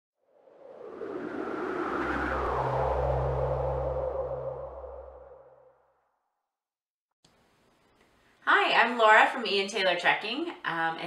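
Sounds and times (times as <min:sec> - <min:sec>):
downward whoosh: 0:00.4 - 0:05.8.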